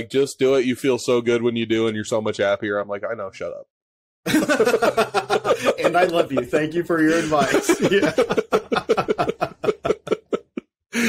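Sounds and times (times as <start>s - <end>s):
man laughing: 4.3s - 11.0s.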